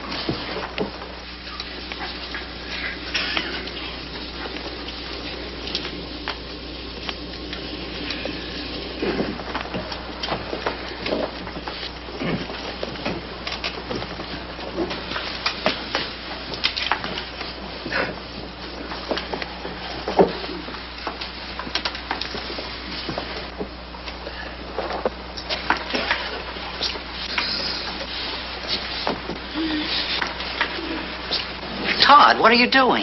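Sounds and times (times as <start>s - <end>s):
low hum: 0.0s - 32.0s
steady hiss: 0.0s - 32.2s.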